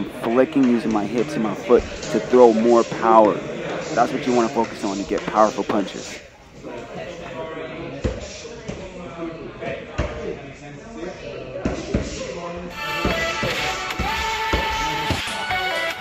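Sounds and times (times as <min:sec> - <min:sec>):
background music: 0:12.7 - 0:16.0.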